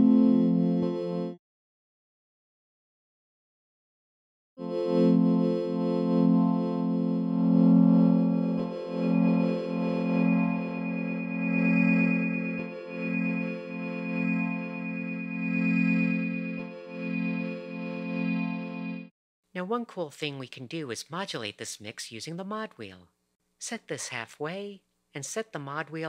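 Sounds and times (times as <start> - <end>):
synthesizer low sustained tone: 0.0 - 1.4, 4.6 - 19.1.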